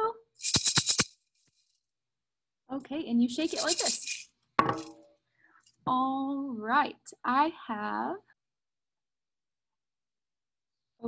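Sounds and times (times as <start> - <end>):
maraca rattling: 0.4 - 1.8, 3.3 - 5.1.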